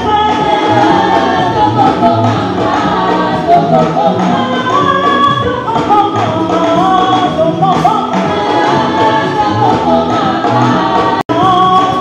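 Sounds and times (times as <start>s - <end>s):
congregation singing in chorus: 0.0s - 12.0s.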